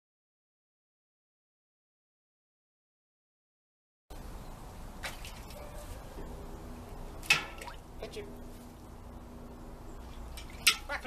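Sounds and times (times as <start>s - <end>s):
sharp water splash: 5.0s - 5.7s, 7.2s - 7.9s.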